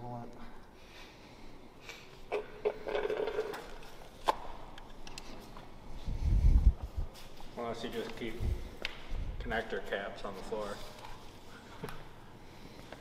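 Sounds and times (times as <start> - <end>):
parts clicking and knocking: 2.3 - 5.4.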